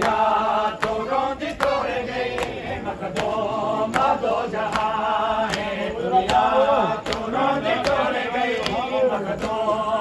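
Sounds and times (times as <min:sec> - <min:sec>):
men chanting together: 0:00.0 - 0:10.0.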